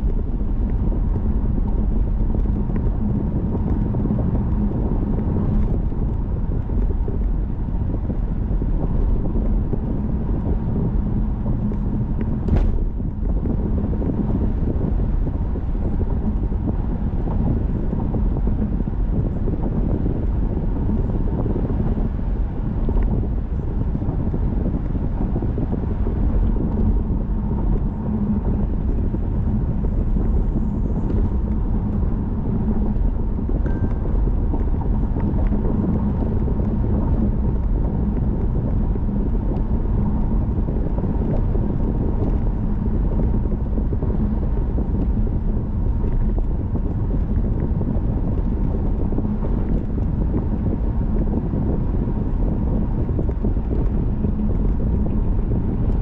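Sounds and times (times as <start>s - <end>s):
car engine cruising: 0.0s - 56.0s
faint steady hum: 0.0s - 56.0s.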